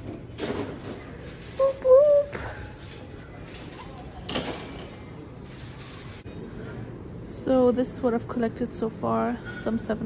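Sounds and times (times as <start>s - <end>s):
low supermarket hum: 0.0s - 10.0s.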